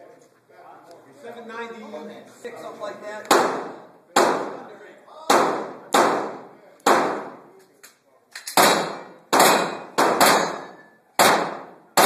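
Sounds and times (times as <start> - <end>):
pistol shots echoing: 3.3 - 4.7, 5.3 - 7.4, 8.5 - 12.0.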